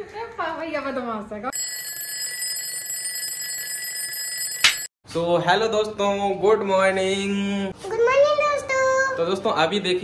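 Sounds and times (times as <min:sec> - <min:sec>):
alarm clock bell ringing: 0:01.5 - 0:04.9.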